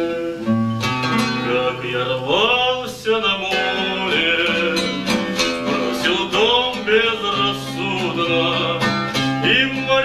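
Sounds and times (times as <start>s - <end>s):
classical guitar: 0.0s - 10.0s
man singing: 1.2s - 10.0s.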